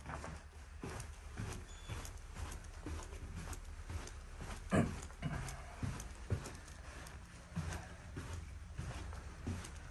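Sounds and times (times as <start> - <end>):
footsteps on hard floor: 0.0 - 9.9
steady low hum: 0.0 - 9.9.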